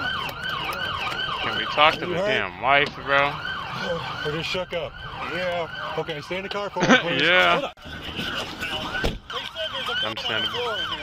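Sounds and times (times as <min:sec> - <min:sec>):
siren yelping: 0:00.0 - 0:11.0.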